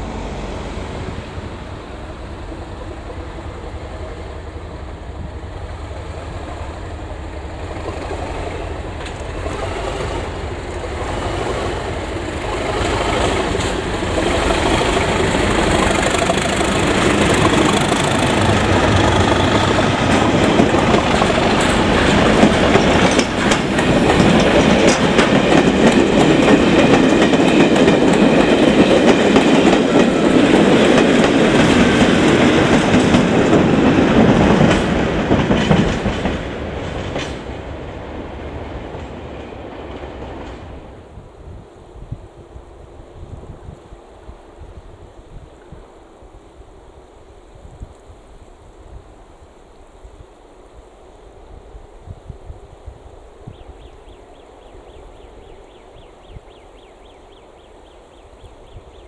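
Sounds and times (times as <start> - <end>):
diesel locomotive engines: 0.0 - 45.0
train wheels clicking over rail joints: 2.4 - 40.9.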